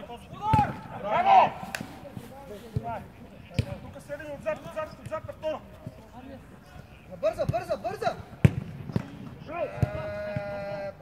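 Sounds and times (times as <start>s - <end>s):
players calling: 0.0s - 11.0s
football kicked thuds: 8.4s - 9.2s.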